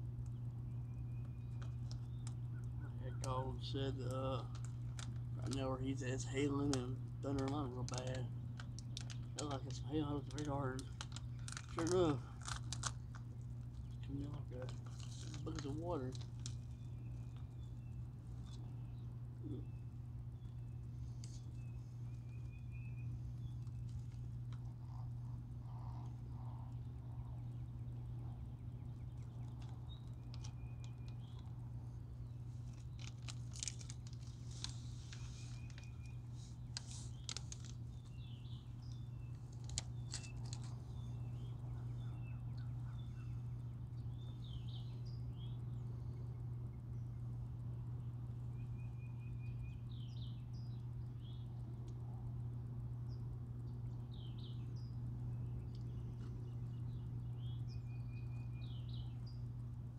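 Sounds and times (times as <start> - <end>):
steady low hum: 0.0 - 59.9
clicks and rustles: 1.2 - 3.4, 4.0 - 5.7, 6.3 - 18.8, 20.5 - 27.3, 28.4 - 42.0
bird chirps: 34.5 - 51.7, 53.1 - 59.6.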